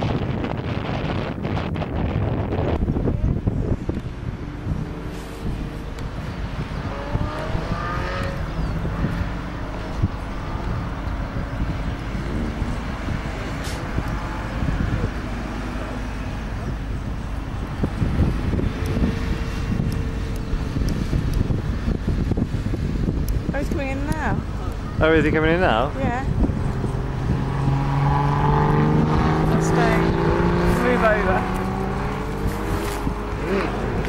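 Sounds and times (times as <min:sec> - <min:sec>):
wind rumble on microphone: 0:00.0 - 0:34.0
distant car engine accelerating: 0:02.4 - 0:23.2, 0:24.2 - 0:34.0.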